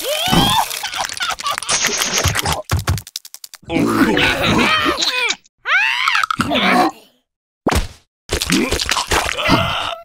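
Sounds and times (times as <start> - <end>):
cartoon characters laughing: 0.4 - 2.6, 3.7 - 5.4.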